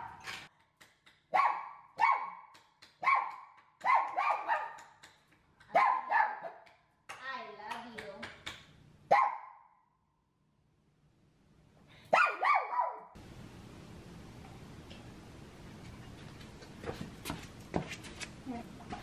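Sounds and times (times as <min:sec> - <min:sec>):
small dog barking: 0:01.3 - 0:04.8, 0:05.7 - 0:06.6, 0:09.1 - 0:09.6, 0:12.1 - 0:13.2.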